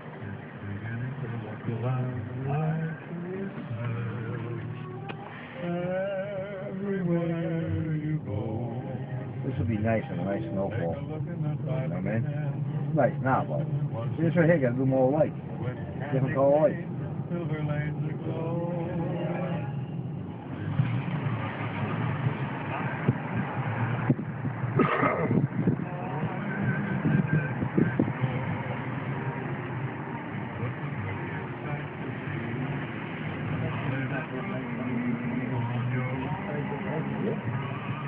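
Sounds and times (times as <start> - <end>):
car engine and road noise: 0.0 - 38.0.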